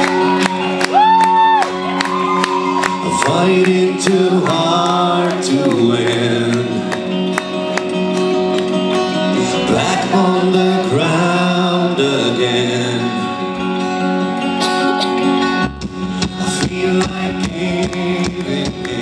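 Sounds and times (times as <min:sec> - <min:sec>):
guitar accompaniment: 0:00.0 - 0:19.0
man singing into a microphone: 0:03.0 - 0:07.2, 0:09.1 - 0:13.8, 0:16.0 - 0:19.0.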